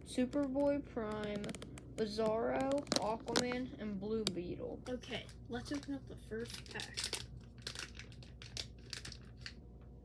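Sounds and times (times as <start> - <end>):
plastic wrapper crinkling: 0.4 - 3.7, 5.0 - 9.6.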